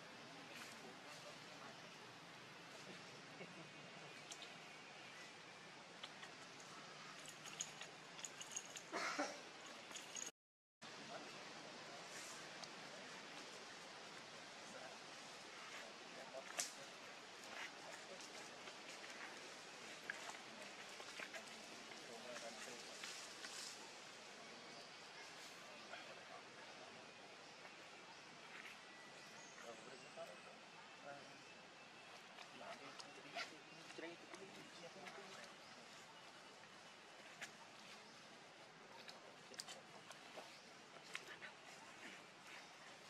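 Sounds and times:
faint indistinct speech: 0:00.0 - 0:09.4, 0:10.9 - 0:43.0
rustles: 0:00.0 - 0:10.3, 0:10.9 - 0:43.0
outdoor background hiss: 0:00.0 - 0:43.0.

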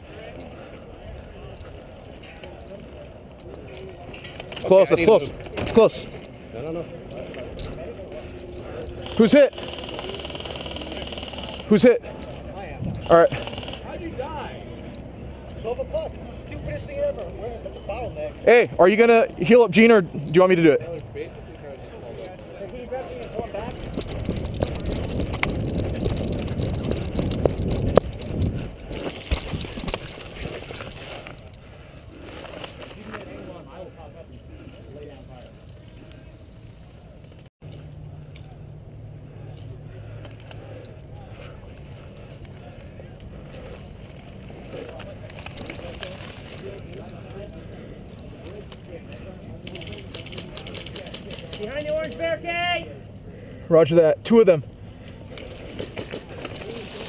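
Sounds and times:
sharp clicks: 0:09.0 - 0:11.9, 0:13.2 - 0:13.9.

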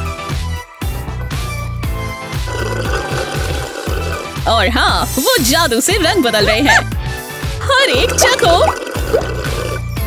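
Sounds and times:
background music with bass line: 0:00.0 - 0:10.0
slurping through a straw: 0:02.3 - 0:04.4, 0:08.0 - 0:10.0.

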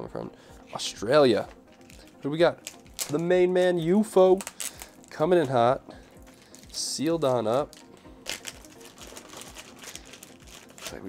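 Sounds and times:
plastic bag crinkling: 0:01.7 - 0:03.2, 0:04.4 - 0:05.2, 0:06.3 - 0:11.0.

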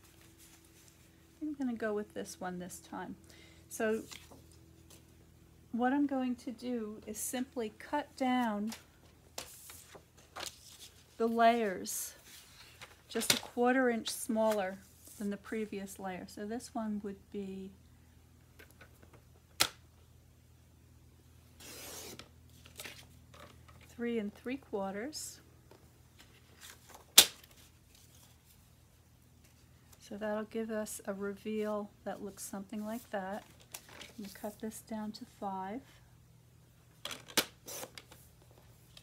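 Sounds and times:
paper rustling: 0:09.4 - 0:11.2.

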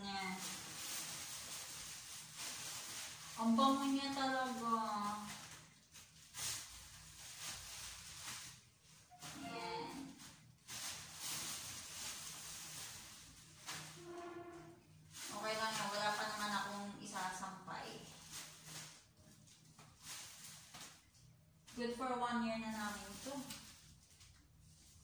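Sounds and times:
plastic bag rustling: 0:00.0 - 0:25.0.

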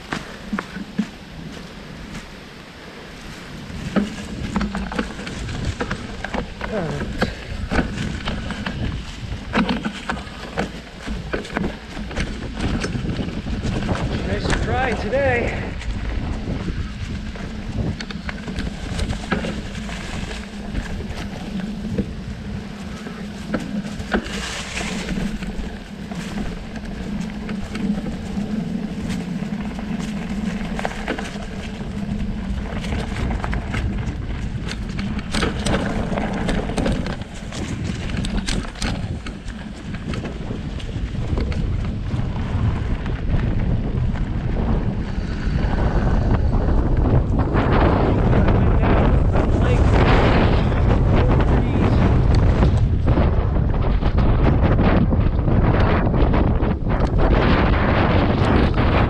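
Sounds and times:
bike tyres rolling on dirt trail: 0:00.0 - 0:59.0
wind buffeting microphone: 0:00.0 - 0:59.0.

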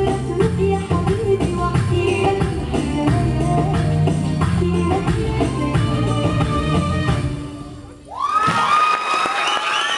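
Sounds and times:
belly-dance music: 0:00.0 - 0:07.8
audience shouting and cheering: 0:08.1 - 0:09.9.

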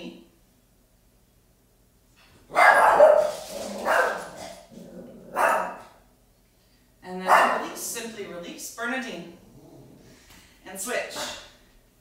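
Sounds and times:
dog barking loudly: 0:02.5 - 0:04.5, 0:05.3 - 0:06.0, 0:07.3 - 0:07.8.

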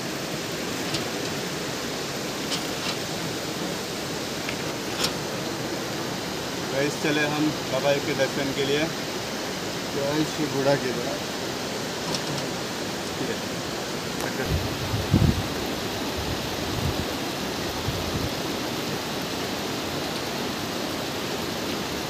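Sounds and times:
river rushing over boulders: 0:00.0 - 0:22.0.

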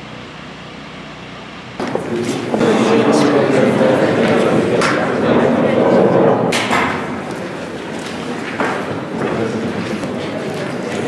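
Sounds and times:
busy room noise: 0:00.0 - 0:11.0.

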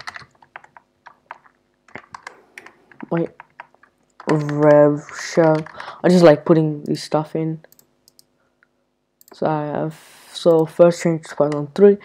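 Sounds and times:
computer keyboard typing: 0:00.0 - 0:05.9.

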